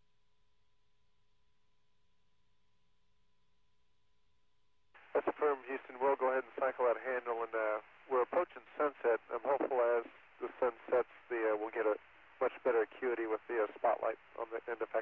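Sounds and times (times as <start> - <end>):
faint steady tone: 0.0 - 15.0
voice talking over radio: 5.2 - 15.0.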